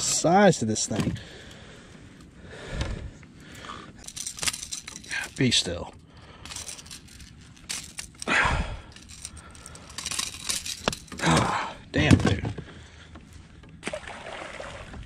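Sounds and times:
metal hooks and pliers jangling: 3.9s - 12.4s.

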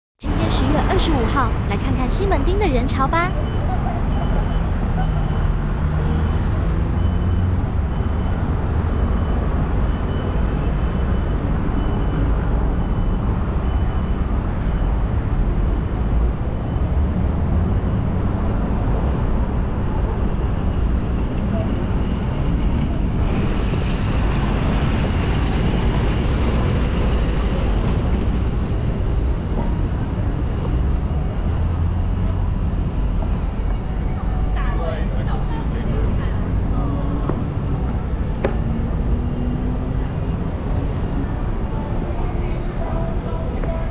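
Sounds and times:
road traffic rumble: 0.2s - 43.9s.

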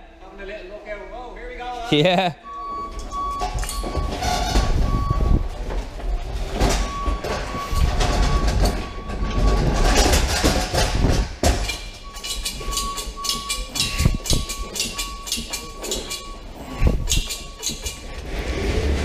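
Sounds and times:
pallet jack wheels rumbling: 3.1s - 19.0s.

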